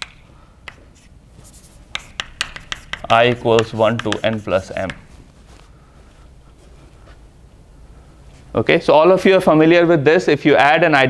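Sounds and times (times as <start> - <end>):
chalk tapping on blackboard: 0.0 - 5.2
chalk scratching: 0.7 - 5.7.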